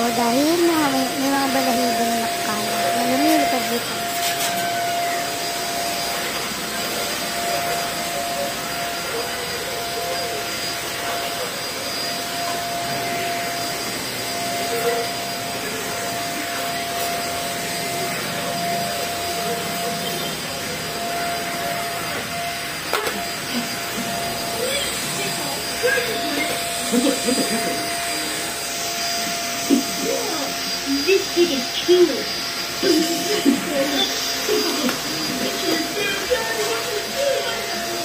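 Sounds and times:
vacuum cleaner running: 0.0s - 38.0s.

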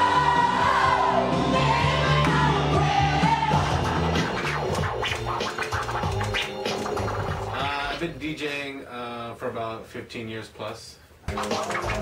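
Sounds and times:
dance music: 0.0s - 8.1s, 11.3s - 12.0s
vinyl record scratching: 3.1s - 8.4s, 11.3s - 12.0s.

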